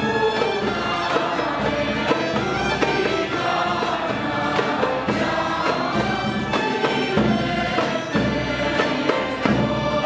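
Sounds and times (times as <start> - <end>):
large drum beats: 0.0 - 10.0
youth choir singing carols: 0.0 - 10.0.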